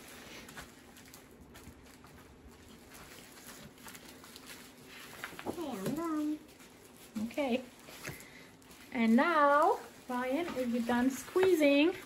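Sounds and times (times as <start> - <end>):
hands patting paper: 0.0 - 12.0.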